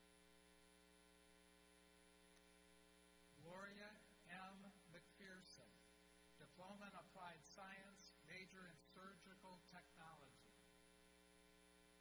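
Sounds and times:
electrical mains hum: 0.0s - 12.0s
person speaking: 3.4s - 5.8s, 6.4s - 10.6s.

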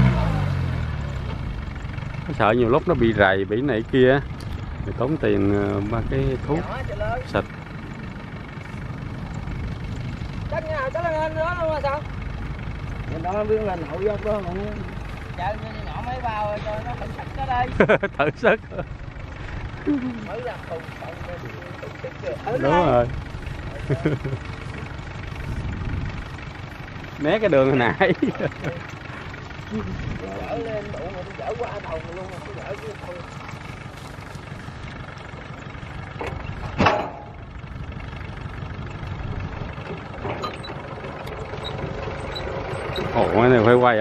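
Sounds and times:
tractor diesel engine idling: 0.0s - 44.0s.

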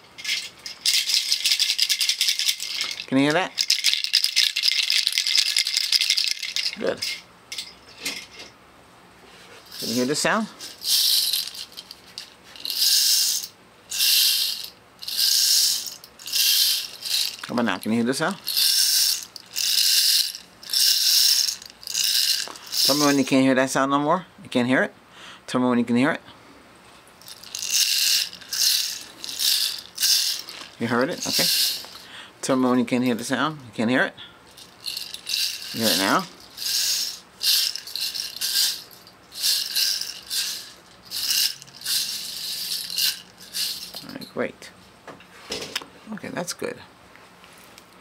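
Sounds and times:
scratchy rattling hiss bursts: 0.0s - 7.2s, 9.6s - 23.5s, 27.2s - 32.7s, 34.5s - 44.4s.

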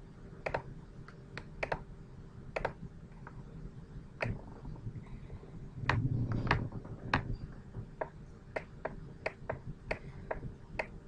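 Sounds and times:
computer mouse clicks: 0.4s - 1.8s, 2.6s - 3.4s, 4.2s - 4.4s, 8.0s - 11.0s.

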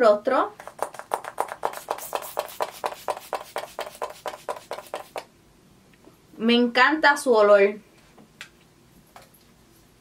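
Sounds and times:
spray bottle hissing spritzes: 1.7s - 4.1s.

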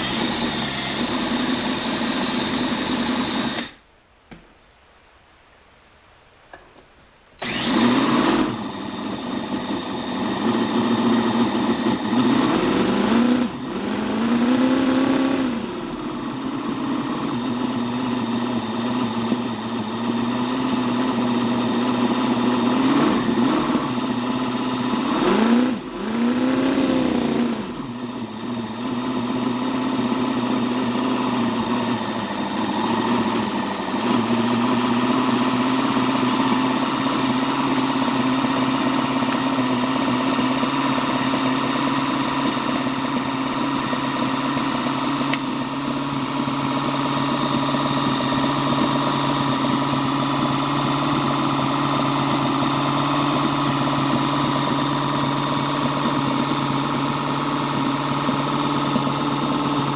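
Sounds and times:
model engine idling and revving: 0.0s - 3.7s, 7.4s - 59.9s.

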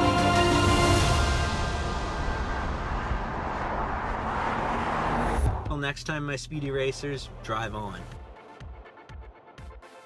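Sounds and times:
car driving on road: 0.8s - 8.1s.

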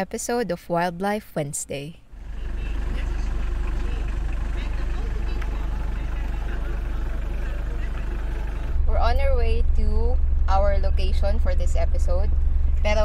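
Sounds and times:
van engine idling: 2.1s - 13.0s.

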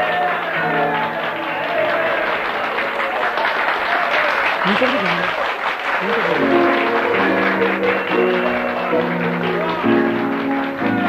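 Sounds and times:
audience applauding: 0.0s - 11.0s
instrumental music: 6.2s - 11.0s.

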